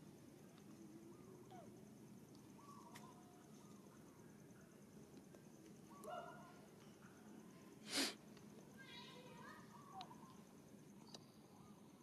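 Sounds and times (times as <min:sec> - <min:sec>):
faint high-pitched calls: 0:00.7 - 0:04.3, 0:08.8 - 0:10.4.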